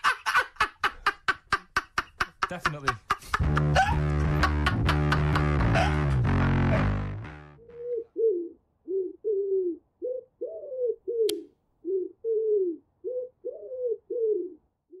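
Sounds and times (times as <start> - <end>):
music: 3.3 - 7.6
pigeon cooing: 7.6 - 15.0.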